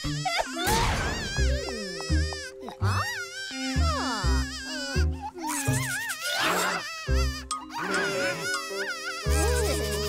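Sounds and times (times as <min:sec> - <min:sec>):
cartoon baby crying wail: 0:00.0 - 0:10.0.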